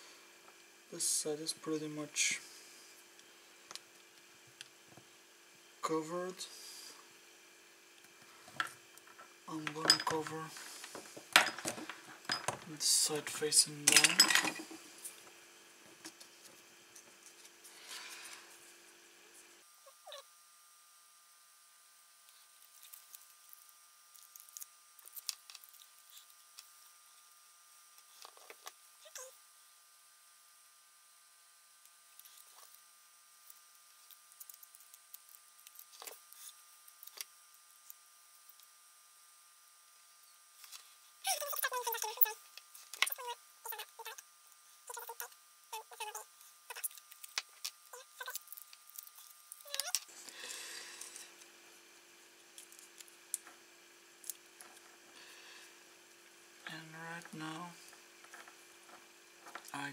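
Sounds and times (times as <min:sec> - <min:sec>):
foil tape crinkling: 0:22.3 - 0:27.0, 0:46.7 - 0:50.4.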